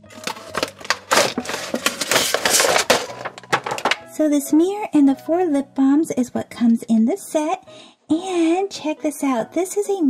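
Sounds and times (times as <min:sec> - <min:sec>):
packaging crinkling: 0:00.0 - 0:04.0.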